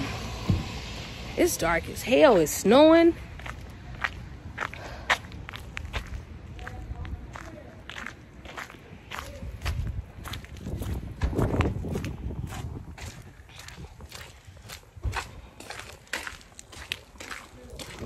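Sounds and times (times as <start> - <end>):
low rumble: 0.0 - 2.0
footsteps in slippers on snow: 1.6 - 18.0.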